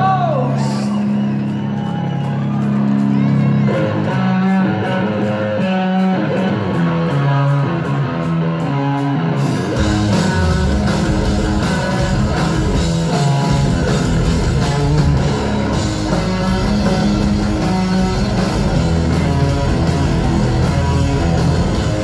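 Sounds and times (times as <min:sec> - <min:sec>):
live rock band: 0:00.0 - 0:22.0
electric guitar melody: 0:02.4 - 0:22.0.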